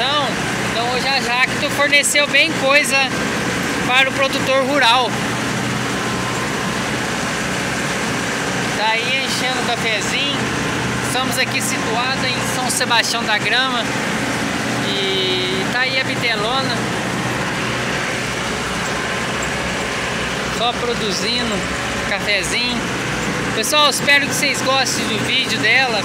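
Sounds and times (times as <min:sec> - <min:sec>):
harvester engine and machinery drone: 0:00.0 - 0:26.0.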